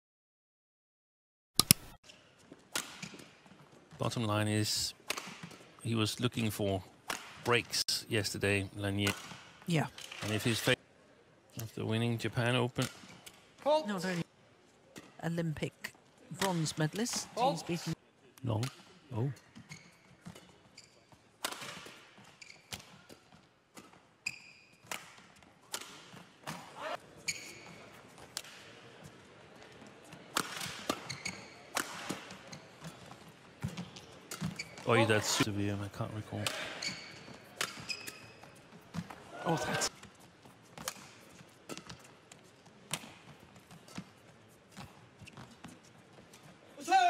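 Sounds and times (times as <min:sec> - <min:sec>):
rackets hitting shuttlecock: 0:02.7 - 0:03.3, 0:05.1 - 0:05.6, 0:07.1 - 0:07.5, 0:09.0 - 0:10.4, 0:16.4 - 0:16.6, 0:21.4 - 0:22.0, 0:24.8 - 0:26.7, 0:30.3 - 0:33.0, 0:37.5 - 0:38.3, 0:40.8 - 0:42.1
shoe squeaks on court: 0:19.5 - 0:21.2, 0:21.8 - 0:23.2, 0:24.2 - 0:24.9, 0:27.2 - 0:28.0, 0:30.9 - 0:33.0, 0:33.8 - 0:35.4, 0:36.5 - 0:38.7.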